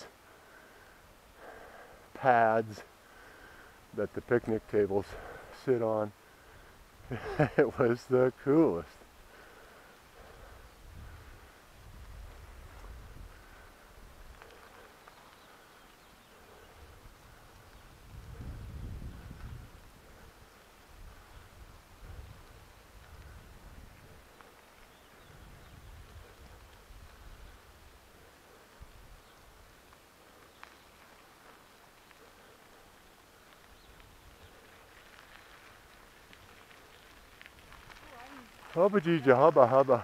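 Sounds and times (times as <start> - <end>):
wind buffeting microphone: 10.1 - 14.8, 16.2 - 29.8.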